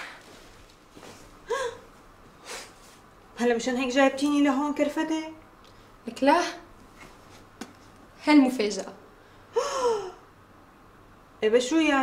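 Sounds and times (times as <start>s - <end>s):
woman gasping: 1.4s - 2.8s, 9.5s - 10.2s
woman breathing: 1.4s - 3.0s, 9.2s - 10.2s.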